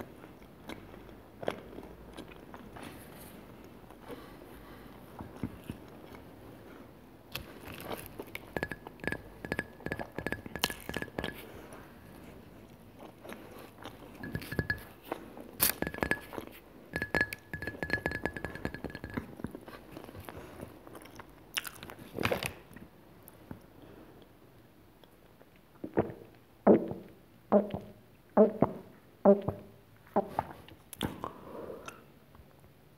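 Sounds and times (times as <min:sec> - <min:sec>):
crackly chewing and crunching: 0:00.0 - 0:04.3, 0:19.4 - 0:23.4
glass mug clinking: 0:08.5 - 0:11.4, 0:14.2 - 0:14.9, 0:15.8 - 0:16.3, 0:17.0 - 0:19.3.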